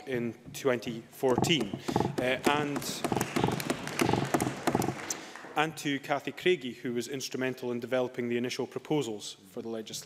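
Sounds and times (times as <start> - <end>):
man speaking: 0.0 - 3.5.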